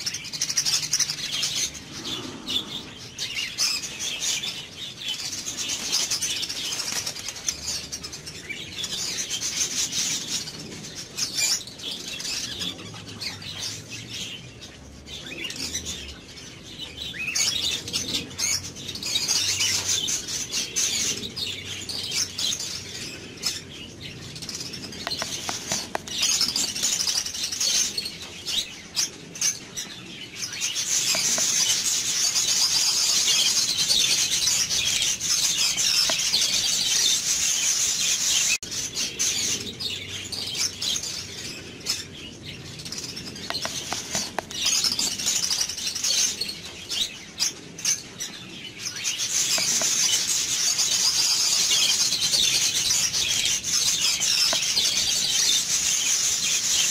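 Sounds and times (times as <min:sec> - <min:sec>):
small birds chirping: 0:00.0 - 0:56.9.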